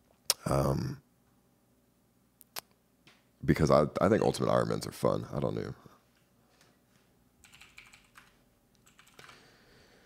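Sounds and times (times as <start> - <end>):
keyboard typing clicks: 7.4 - 9.4.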